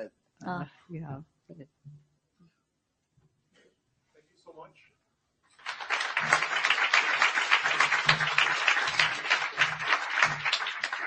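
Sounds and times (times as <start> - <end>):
audience applauding: 5.6 - 11.0.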